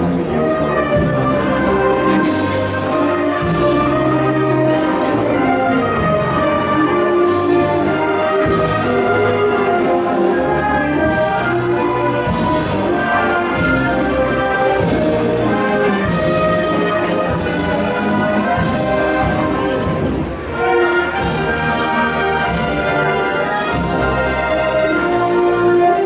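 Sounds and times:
marching band playing: 0:00.0 - 0:26.0.

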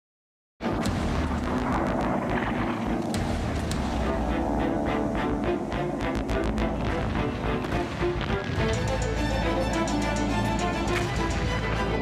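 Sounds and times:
heavy battle rumble: 0:00.6 - 0:12.0.

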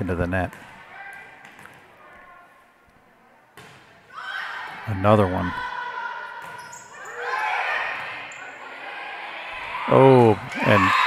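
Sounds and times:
voices of players and spectators: 0:00.0 - 0:11.0
volleyball struck with a thud: 0:03.6 - 0:03.9.

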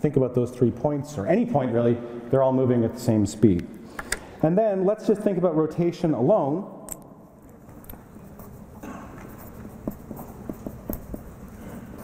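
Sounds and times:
marker pen scratching on paper: 0:08.2 - 0:12.0
pen tapping: 0:09.4 - 0:11.6.

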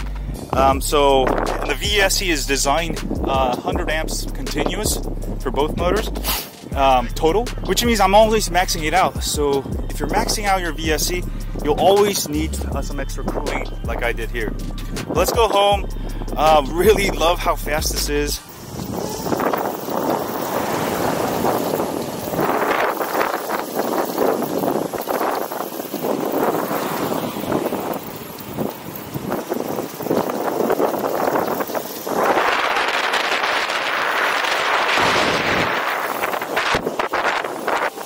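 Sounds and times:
wind rushing over microphone: 0:00.0 - 0:38.0
wheels rolling on asphalt: 0:14.8 - 0:38.0.

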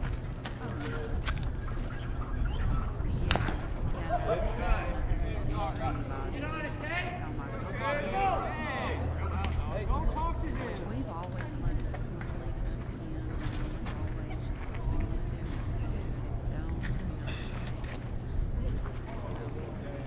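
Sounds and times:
chatter of spectators: 0:00.0 - 0:20.0
steady low hum: 0:00.0 - 0:20.0.

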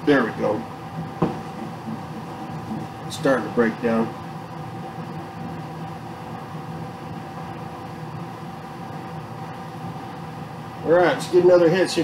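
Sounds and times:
air conditioner humming: 0:00.0 - 0:12.0
short knock: 0:01.2 - 0:01.7.

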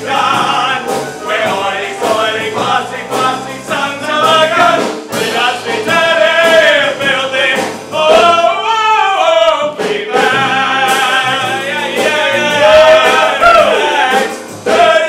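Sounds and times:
men singing together: 0:00.0 - 0:15.0.

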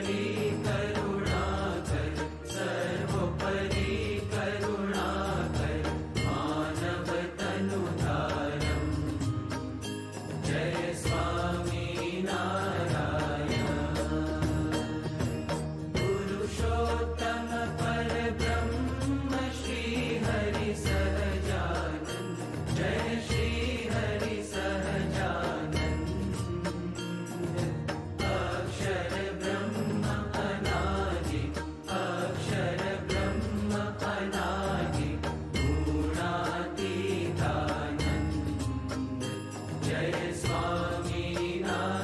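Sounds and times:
voices singing a hymn: 0:00.0 - 0:09.8, 0:10.4 - 0:42.0
percussion beat: 0:00.0 - 0:42.0.

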